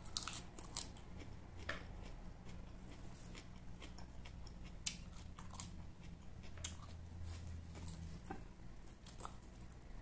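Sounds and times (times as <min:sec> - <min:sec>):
crunching leafy greens: 0:00.0 - 0:01.0.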